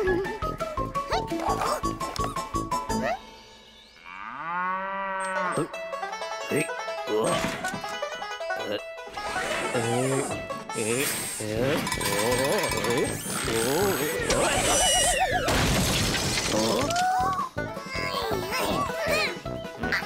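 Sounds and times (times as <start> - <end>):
cartoon character squealing: 13.6 - 15.5.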